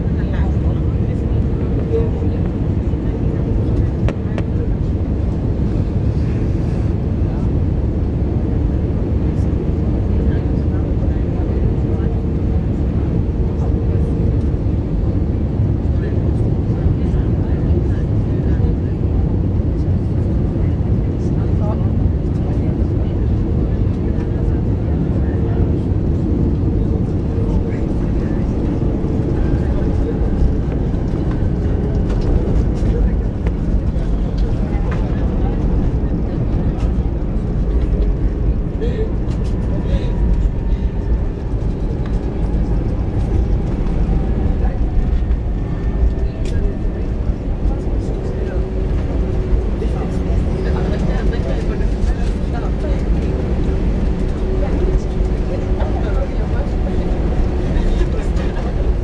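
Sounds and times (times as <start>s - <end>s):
jet engines rumbling: 0.0s - 59.0s.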